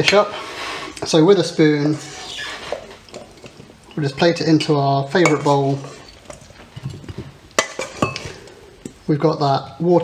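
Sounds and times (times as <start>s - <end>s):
metal spoon scraping steel bowl: 5.2s - 6.3s.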